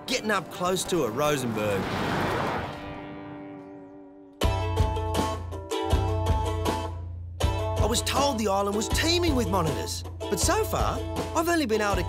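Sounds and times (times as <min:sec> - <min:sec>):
vehicle passing on gravel: 0:00.6 - 0:03.4.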